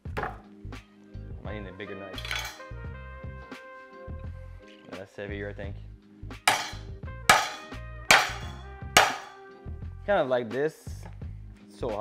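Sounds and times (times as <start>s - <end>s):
background music: 0.0s - 12.0s
knife whacking on cutting board: 6.5s - 9.4s.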